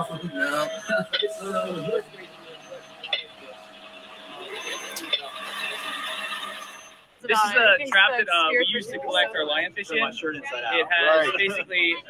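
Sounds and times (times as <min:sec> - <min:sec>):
faint indistinct voices: 0:00.0 - 0:12.0
steady hum: 0:00.0 - 0:12.0.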